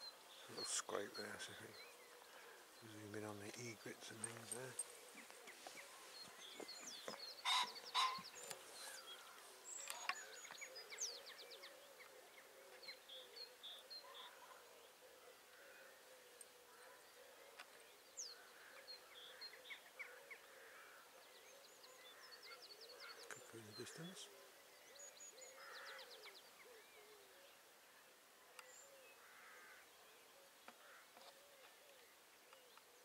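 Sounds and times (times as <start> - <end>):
loud harsh bird calls: 0.0 - 10.3
songbirds chirping and trilling: 0.0 - 33.0.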